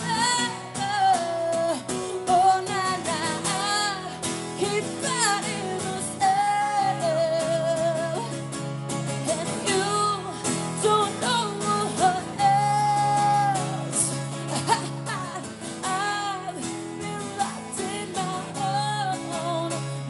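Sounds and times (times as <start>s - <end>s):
strummed acoustic guitar: 0.0s - 20.0s
woman singing: 0.0s - 20.0s.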